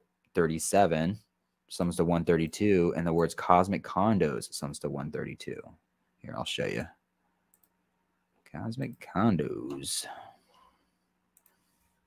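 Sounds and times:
computer mouse clicks: 0:07.5 - 0:07.8, 0:11.4 - 0:11.8
person speaking: 0:08.5 - 0:10.4.

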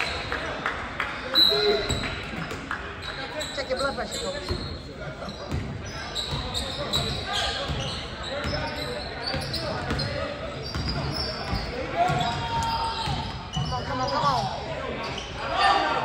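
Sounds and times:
spectators talking: 0:00.0 - 0:16.0.

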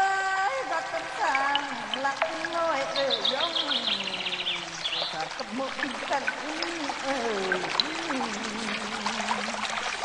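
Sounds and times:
water rushing and pouring: 0:00.0 - 0:10.0.

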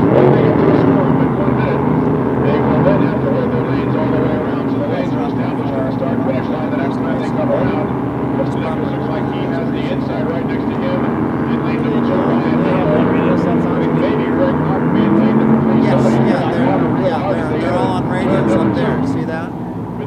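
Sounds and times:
racing boat engines droning: 0:00.0 - 0:20.0.

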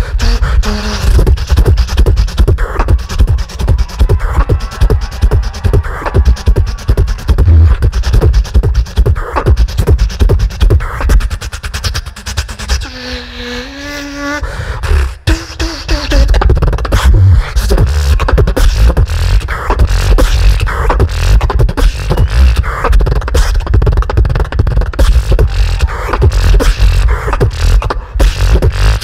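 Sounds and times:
beatboxing through a microphone: 0:00.0 - 0:29.0.

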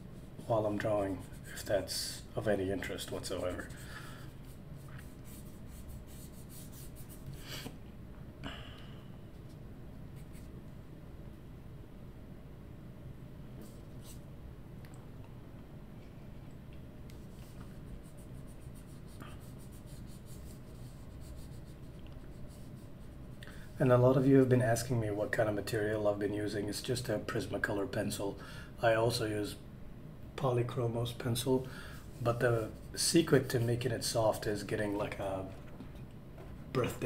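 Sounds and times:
pencil scratching on paper: 0:03.3 - 0:07.3, 0:17.4 - 0:23.2.

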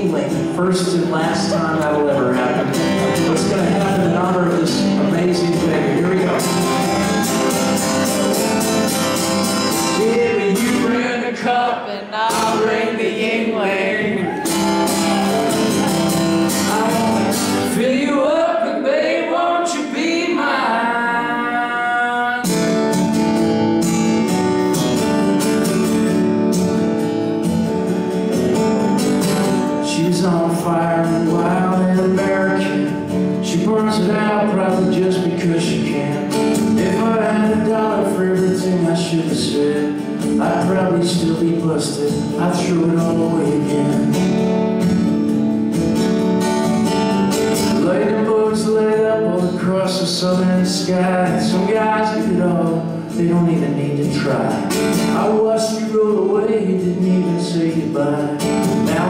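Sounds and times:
man singing: 0:00.0 - 0:22.9, 0:29.7 - 0:44.4, 0:47.6 - 0:59.0
strummed acoustic guitar: 0:00.0 - 0:59.0.

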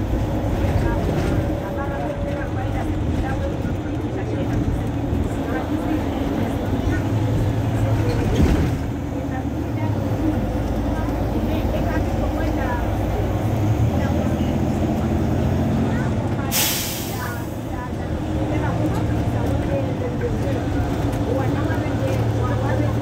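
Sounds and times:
diesel bus idling: 0:00.0 - 0:23.0
compressed air hiss: 0:16.5 - 0:17.3.

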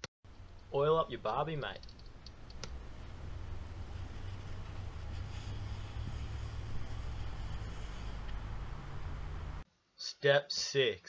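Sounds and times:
steady low rumble: 0:00.3 - 0:09.6
paper towel rubbing grill bars: 0:00.8 - 0:09.4.

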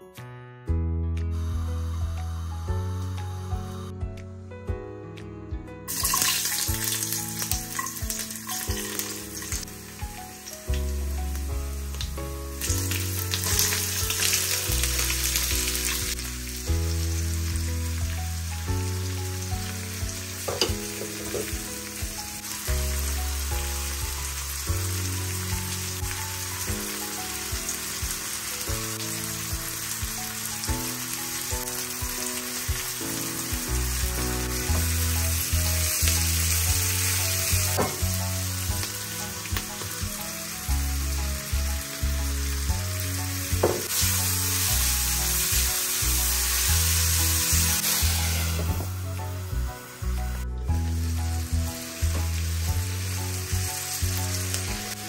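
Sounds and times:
soft background music: 0:00.0 - 0:55.0
vegetables sizzling in oil: 0:05.9 - 0:55.0
spatula knocking and scraping pan: 0:20.5 - 0:21.6.

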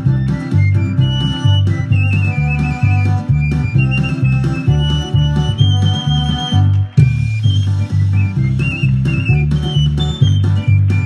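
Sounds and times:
high pipe melody: 0:00.0 - 0:11.0
string drum beat: 0:00.0 - 0:11.0.

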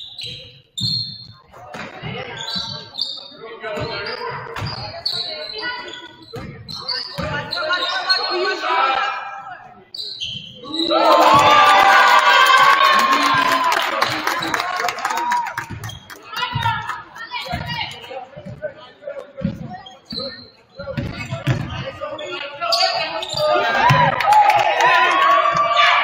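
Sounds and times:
people shouting in gym: 0:10.6 - 0:13.8, 0:22.9 - 0:26.0.

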